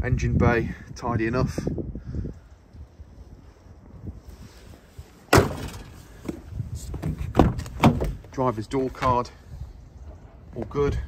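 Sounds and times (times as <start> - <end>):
van bonnet slamming shut: 5.3 - 6.0.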